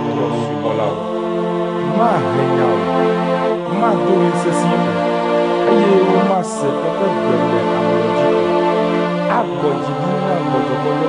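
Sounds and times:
music with chant-like singing: 0:00.0 - 0:11.0.

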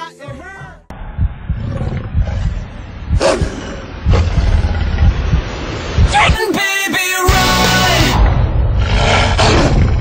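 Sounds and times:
deep rumbling animal growl: 0:01.0 - 0:05.4, 0:08.3 - 0:10.0.

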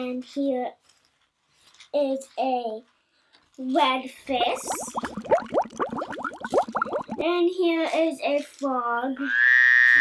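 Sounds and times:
bubbles popping: 0:04.3 - 0:07.4.

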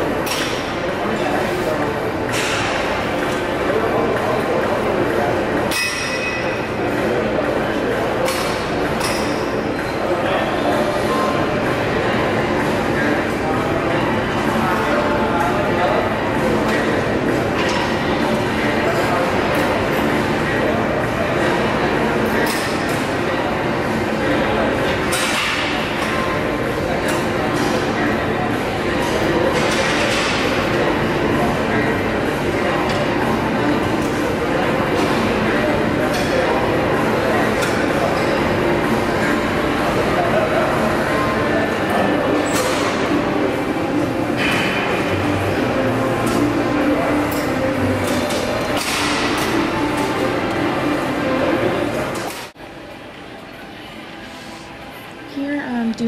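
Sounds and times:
murmur of voices: 0:00.0 - 0:56.0.

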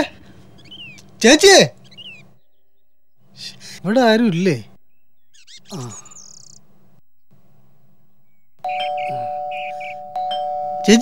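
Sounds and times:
electronic doorbell chime: 0:08.6 - 0:11.0.

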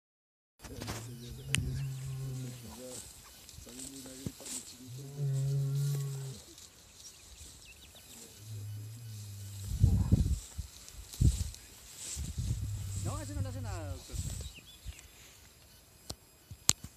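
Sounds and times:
bull mooing: 0:01.5 - 0:02.6, 0:04.9 - 0:06.4, 0:08.3 - 0:09.7, 0:12.6 - 0:14.0.

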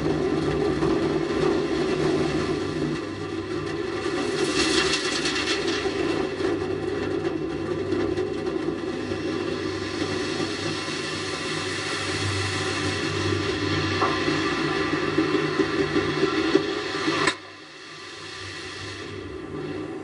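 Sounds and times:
low droning hum: 0:00.0 - 0:20.0
rushing rumble: 0:00.0 - 0:20.0.

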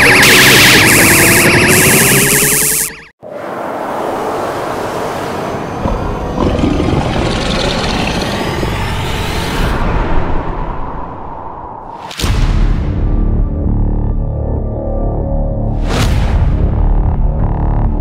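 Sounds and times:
energy beam blast: 0:00.0 - 0:03.1
dramatic background music: 0:12.0 - 0:18.0.

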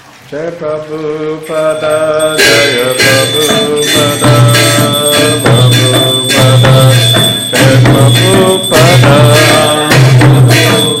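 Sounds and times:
person chanting devotional chant: 0:00.3 - 0:11.0.

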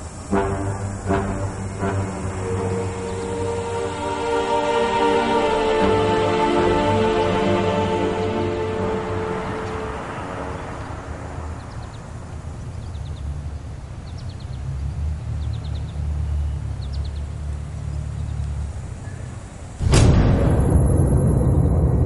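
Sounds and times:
distant traffic rumble: 0:00.0 - 0:22.0
small birds chirping: 0:10.8 - 0:19.7
sudden loud hit: 0:19.8 - 0:22.0.

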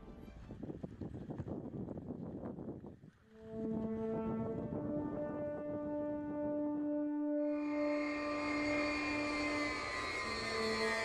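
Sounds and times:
low brass chords: 0:03.4 - 0:11.0
rough noisy score music: 0:07.4 - 0:11.0.

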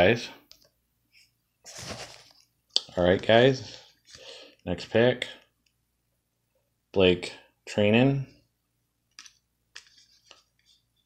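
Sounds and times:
playing cards sliding and clicking: 0:09.2 - 0:11.0.

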